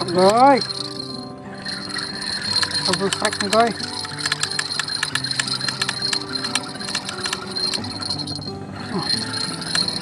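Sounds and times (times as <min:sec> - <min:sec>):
fishing reel clicking: 0:00.0 - 0:10.0.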